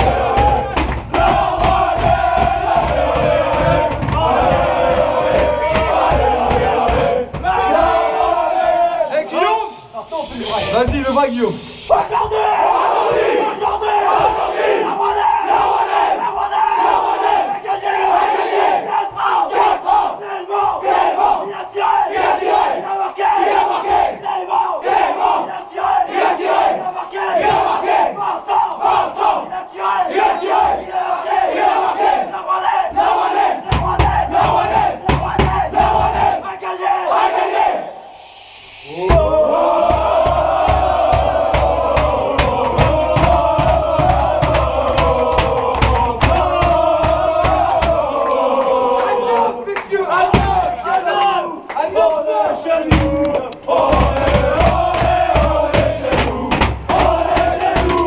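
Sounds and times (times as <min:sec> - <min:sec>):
group shout: 0:00.0 - 0:10.8, 0:11.9 - 0:38.1
heavy rhythmic thumping: 0:00.0 - 0:16.2, 0:32.9 - 0:36.5, 0:39.0 - 0:49.2, 0:50.2 - 0:50.8, 0:52.8 - 0:58.0
team chanting in unison: 0:00.0 - 0:58.0.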